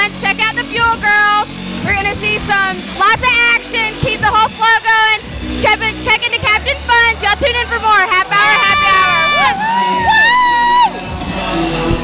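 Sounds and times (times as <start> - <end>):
music: 0.0 - 12.0
women whooping: 8.5 - 11.0.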